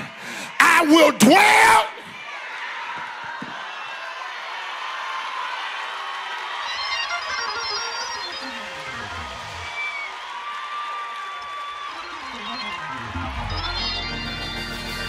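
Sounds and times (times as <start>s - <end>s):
congregation cheering and shouting: 0.0s - 15.0s
organ music: 6.7s - 9.9s, 11.9s - 15.0s.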